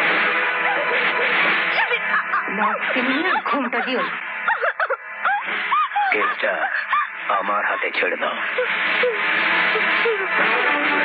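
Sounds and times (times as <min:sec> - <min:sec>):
film score music: 0:00.0 - 0:11.0
woman crying out in distress: 0:03.8 - 0:07.2.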